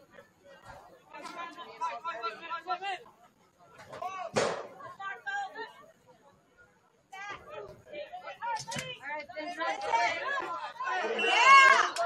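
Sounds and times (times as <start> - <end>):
sharp thump: 4.4 - 4.7
people shouting on a field: 7.2 - 12.0.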